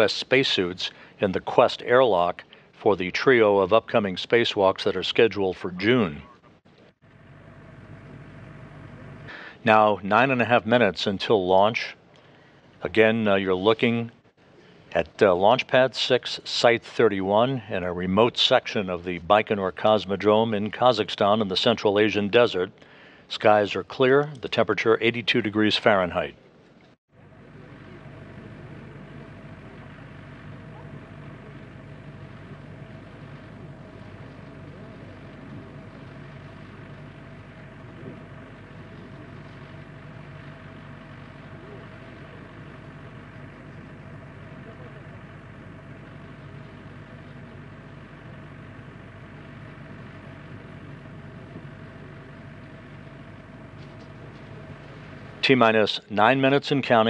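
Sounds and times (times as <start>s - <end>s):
broadcast feed hum and hiss: 0.0s - 57.0s.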